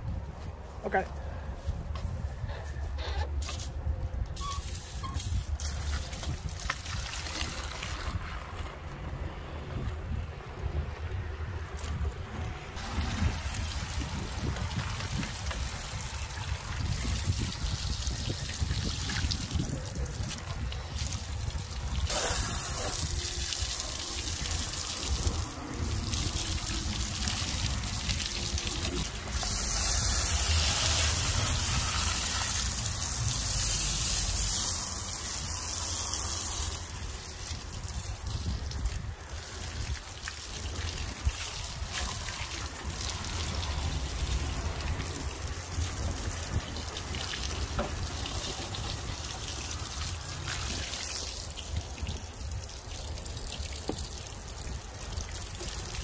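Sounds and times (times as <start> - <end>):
garden hose spraying water: 4.4 - 8.4, 12.8 - 56.0.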